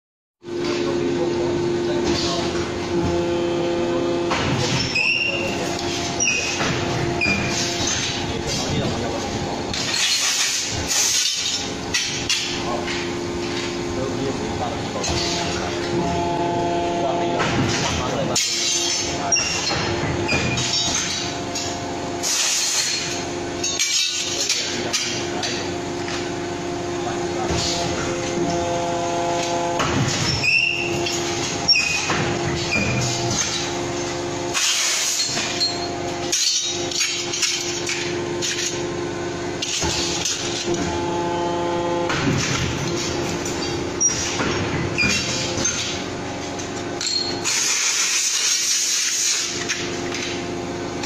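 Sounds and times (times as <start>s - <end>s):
hydraulic press humming drone: 0.4s - 51.0s
steel parts clinking and knocking: 9.7s - 13.7s, 22.4s - 25.6s, 34.6s - 38.8s, 46.7s - 50.4s.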